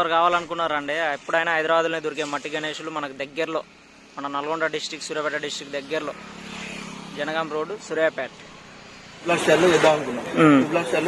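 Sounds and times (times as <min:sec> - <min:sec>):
people talking: 0:09.2 - 0:11.0.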